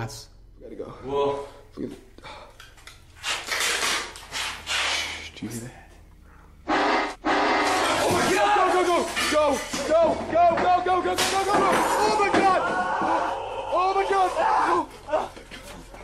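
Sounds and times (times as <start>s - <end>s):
toy accordion note: 6.7s - 7.9s
panicked yelling: 7.8s - 15.5s.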